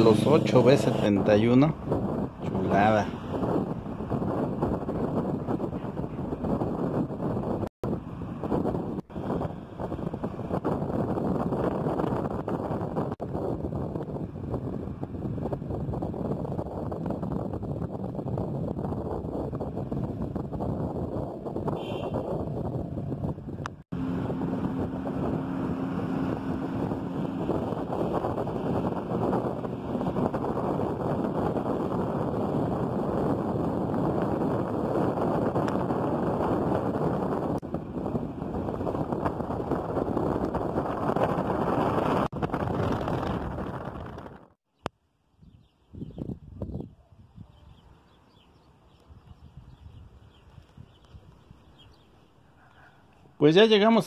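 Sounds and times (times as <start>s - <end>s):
wind and road noise in car: 0.0s - 54.0s.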